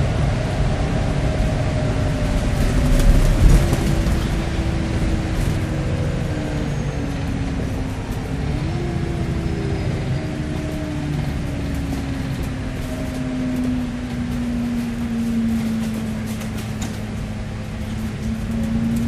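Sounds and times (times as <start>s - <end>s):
bus engine rumble: 0.0s - 19.0s
gearbox whine: 0.0s - 19.0s
knocks and rattles: 2.3s - 5.8s.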